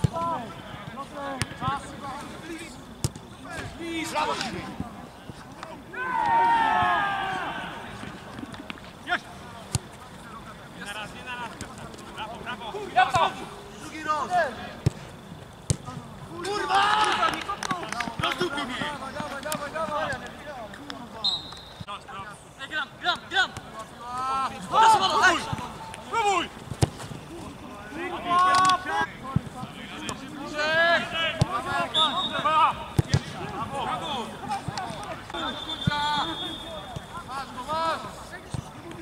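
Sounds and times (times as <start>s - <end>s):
players shouting: 5.6s - 8.2s, 15.8s - 20.5s, 22.7s - 39.0s
long drawn-out shout: 5.9s - 7.8s
high whistle blast: 35.4s - 36.8s.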